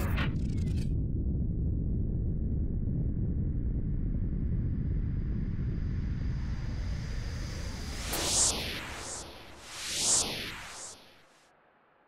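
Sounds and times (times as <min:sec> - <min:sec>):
low rumble: 0:00.0 - 0:07.9.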